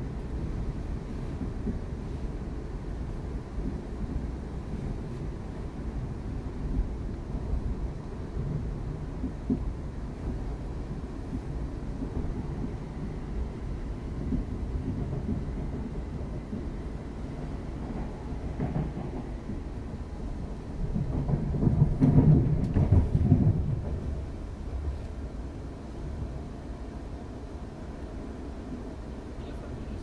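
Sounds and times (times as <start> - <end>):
train wheels rumbling: 0.0 - 30.0.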